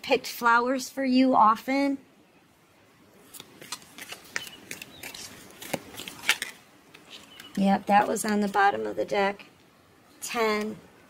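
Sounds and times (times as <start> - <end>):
cards clicking and snapping: 3.3 - 7.6.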